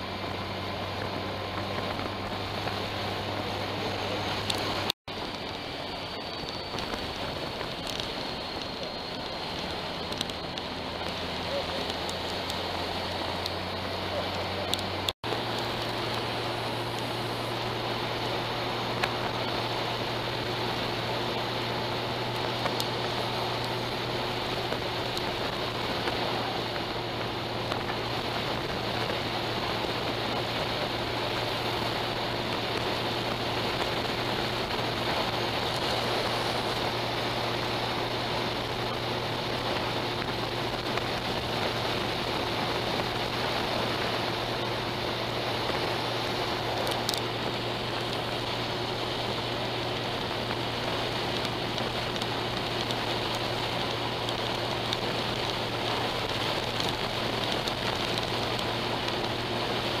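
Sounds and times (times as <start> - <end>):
motorcycle engine and road hum: 0.0 - 60.0
wind rush over windscreen: 0.0 - 60.0.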